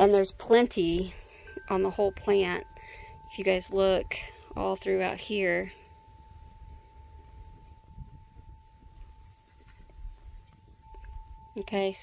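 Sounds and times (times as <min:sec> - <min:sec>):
crickets chirping: 0:00.0 - 0:12.0
thin steady tone: 0:00.0 - 0:12.0.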